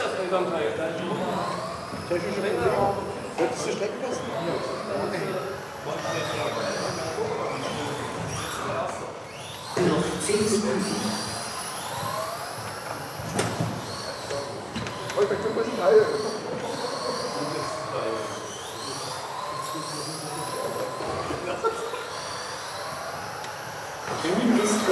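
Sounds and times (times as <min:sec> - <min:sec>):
rc car motors whining: 0:00.0 - 0:24.9.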